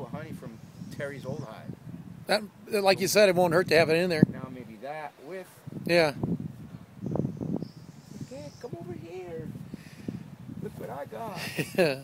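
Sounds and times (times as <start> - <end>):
rustling near microphone: 5.1 - 11.7.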